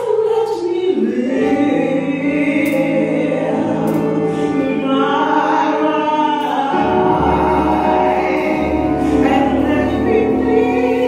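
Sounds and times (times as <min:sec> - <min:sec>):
woman singing gospel: 0:00.0 - 0:11.0.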